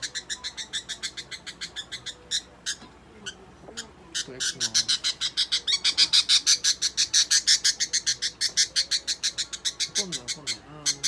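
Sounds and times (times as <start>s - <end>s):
budgerigar squawking: 0.0s - 11.0s.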